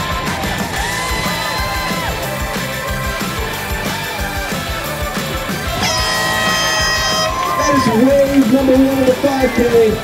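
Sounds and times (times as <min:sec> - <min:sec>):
background music with beat: 0:00.0 - 0:10.0
air horn blast: 0:05.8 - 0:07.9.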